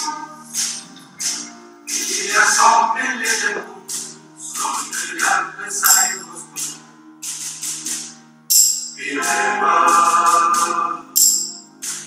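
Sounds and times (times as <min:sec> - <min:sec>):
mixed choir singing: 0:01.9 - 0:03.9, 0:04.5 - 0:06.4, 0:09.0 - 0:11.2.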